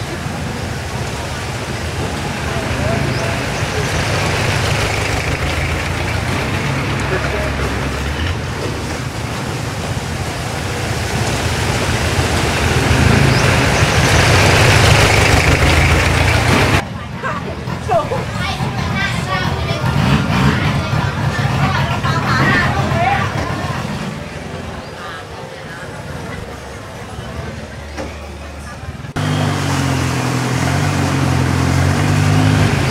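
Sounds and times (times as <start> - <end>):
boat engine running: 0.0 - 32.9
people chattering: 0.0 - 32.9
water noise: 0.0 - 32.9.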